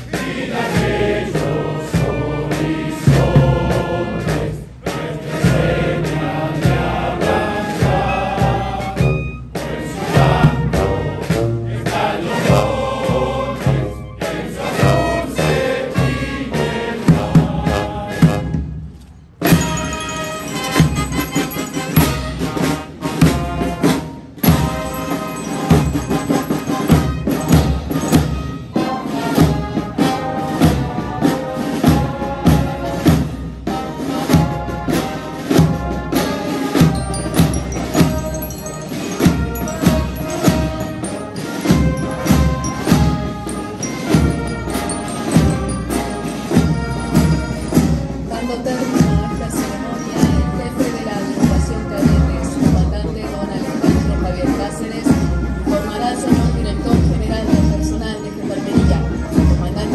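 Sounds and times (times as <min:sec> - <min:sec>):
marching band of brass and drums: 0:00.0 - 0:59.9.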